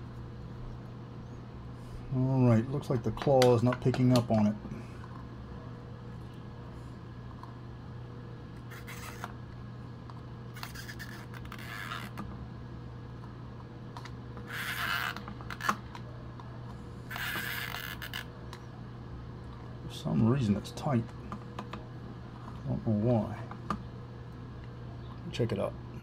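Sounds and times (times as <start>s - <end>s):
steady low hum: 0.0s - 26.0s
plastic cartridge scraping: 8.6s - 9.4s, 10.6s - 12.2s, 17.1s - 18.3s.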